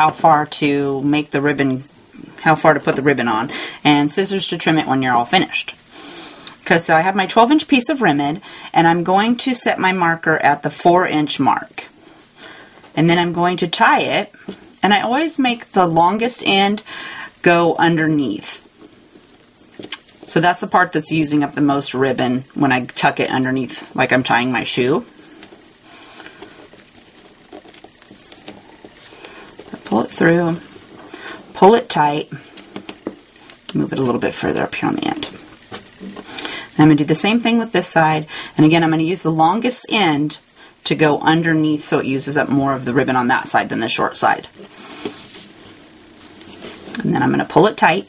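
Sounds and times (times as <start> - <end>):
low room hiss: 0.0 - 48.0
ribbon rustling: 11.9 - 36.9, 43.3 - 47.6.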